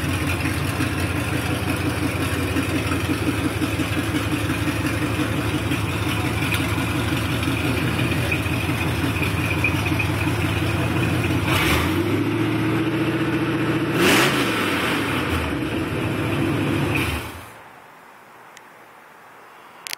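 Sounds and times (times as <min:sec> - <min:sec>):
pickup engine idling and revving: 0:00.0 - 0:17.6.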